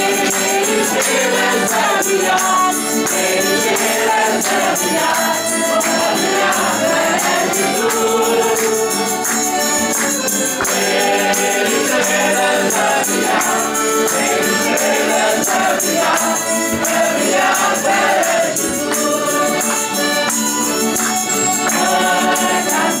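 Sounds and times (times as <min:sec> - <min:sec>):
accordions: 0:00.0 - 0:23.0
group singing folk song: 0:00.0 - 0:23.0
guitars: 0:00.0 - 0:23.0
tambourine beat: 0:00.0 - 0:23.0.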